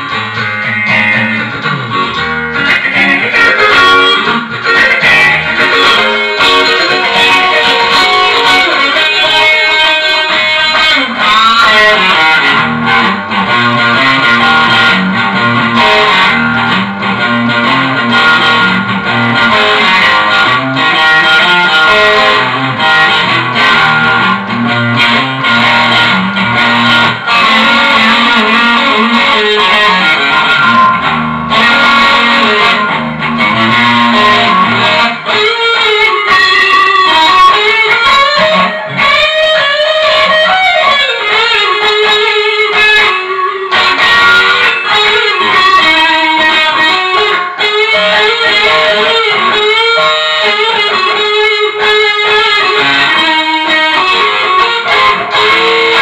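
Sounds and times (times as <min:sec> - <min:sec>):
electric guitar lead with string bends: 0:00.0 - 0:56.0.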